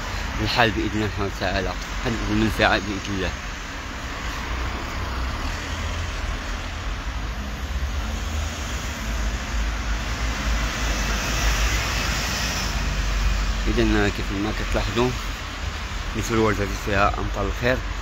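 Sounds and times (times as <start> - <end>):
cars driving past: 0.0 - 18.0.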